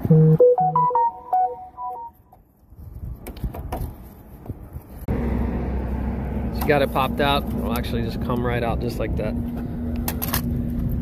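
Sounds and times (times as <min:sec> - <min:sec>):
electronic jingle: 0:00.0 - 0:02.2.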